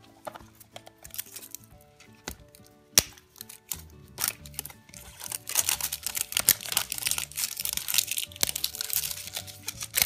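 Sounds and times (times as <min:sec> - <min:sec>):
plastic wrapping crackling: 0:00.0 - 0:10.0
soft background music: 0:00.0 - 0:10.0.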